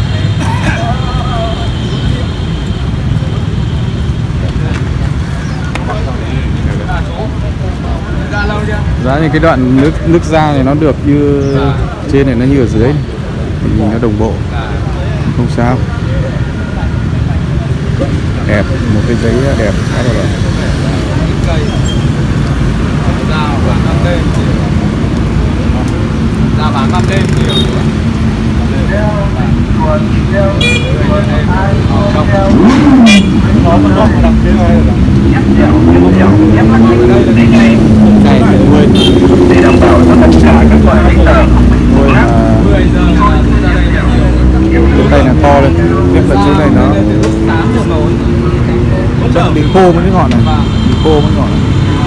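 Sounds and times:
people talking: 0.0 - 3.6, 4.3 - 22.1, 23.0 - 52.0
street traffic rumble: 0.0 - 52.0
vehicle engine running nearby: 0.0 - 52.0.

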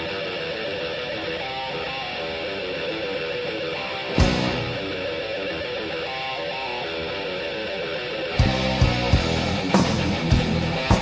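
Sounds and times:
heavy metal guitar notes: 0.0 - 11.0.

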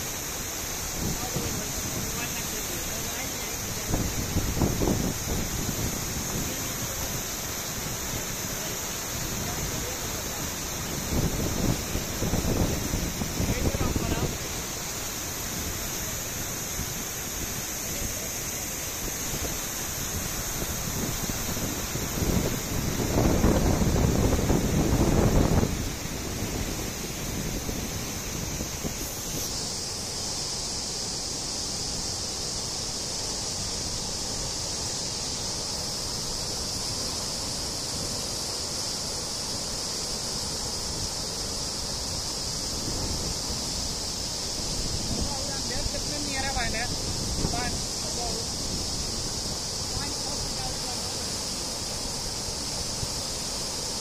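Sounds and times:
high hiss of water: 0.0 - 54.0
water rushing over weir: 0.0 - 54.0.

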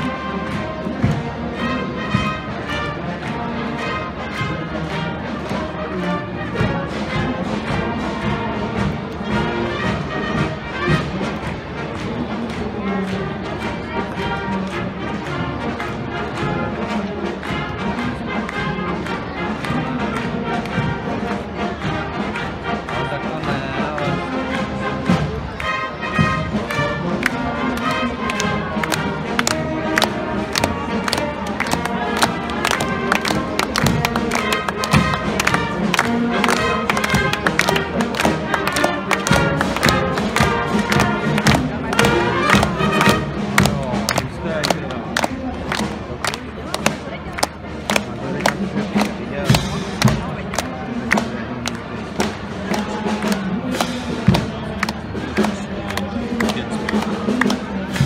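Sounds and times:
marching brass band: 0.0 - 58.0.

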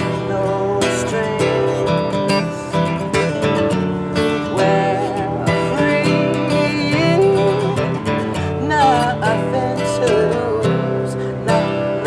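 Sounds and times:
acoustic guitars strummed: 0.0 - 12.0
men singing pop melody: 0.0 - 12.0.

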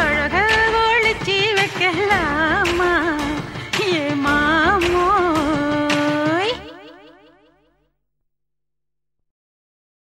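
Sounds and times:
song echo tail: 1.7 - 7.9.

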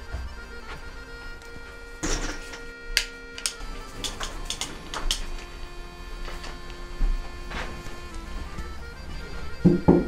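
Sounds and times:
quiet background music: 0.0 - 10.0
plastic strips clacking: 2.0 - 5.5
plastic curtain strips rustling: 3.4 - 5.5.

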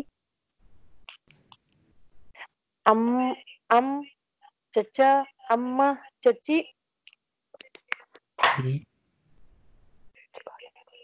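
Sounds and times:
person whispering: 10.2 - 11.0.

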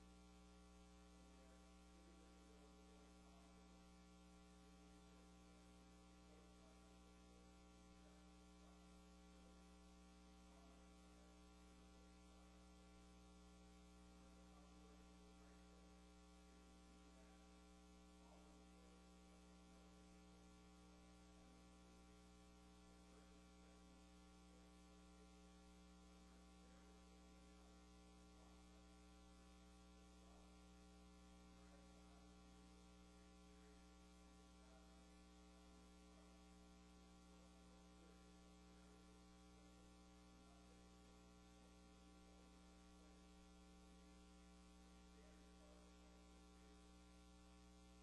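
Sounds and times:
faint mains hum: 0.0 - 48.0.

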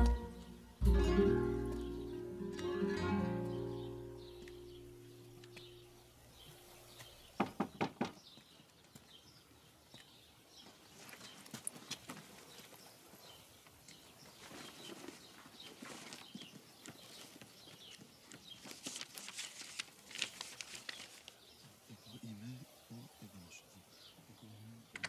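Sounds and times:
outdoor ambience: 0.0 - 25.0
knocks on wooden door: 7.4 - 8.2.

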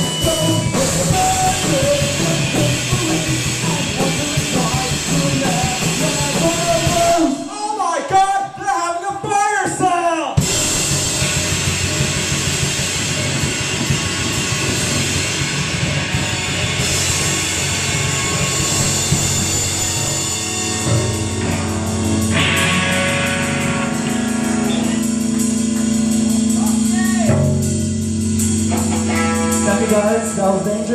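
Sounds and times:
distorted electric guitars: 0.0 - 8.6, 9.2 - 30.9
person singing: 0.0 - 9.3, 29.5 - 30.9
drums: 0.0 - 30.9.

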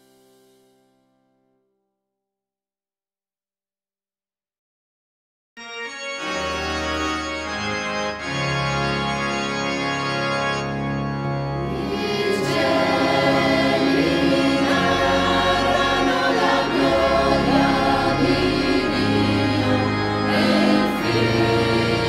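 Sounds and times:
sustained organ chords: 5.6 - 22.0
choir singing: 11.6 - 22.0.

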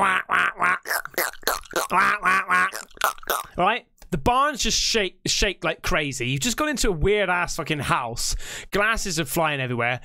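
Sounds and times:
man talking quickly: 3.5 - 10.0.

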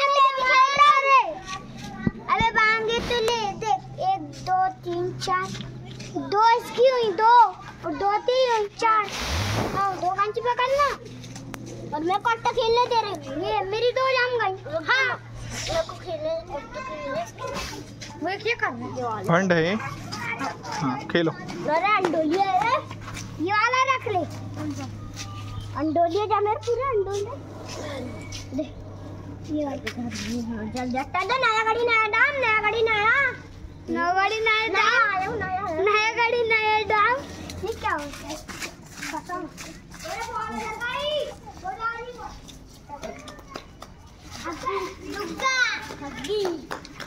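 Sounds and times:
children talking and calling out: 0.0 - 47.0
steady low hum: 21.4 - 34.7.

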